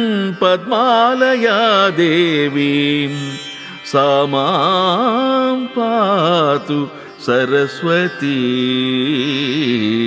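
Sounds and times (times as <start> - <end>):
person singing devotional verse: 0.0 - 10.0.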